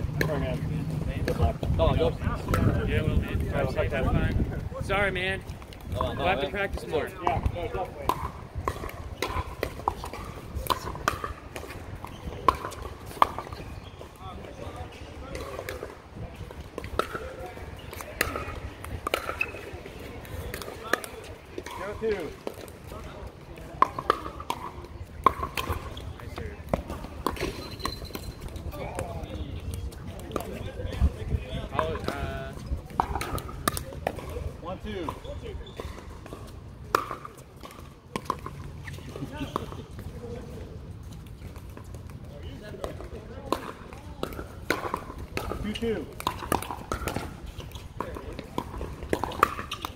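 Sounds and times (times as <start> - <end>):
voices in background: 0.0 - 49.9
paddles striking plastic ball: 42.8 - 49.9.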